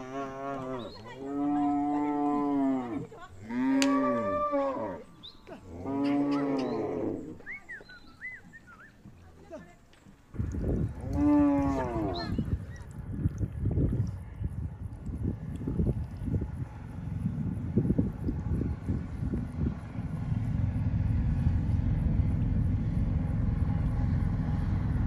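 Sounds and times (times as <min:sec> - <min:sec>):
cattle mooing: 0:00.0 - 0:07.4, 0:11.0 - 0:12.4.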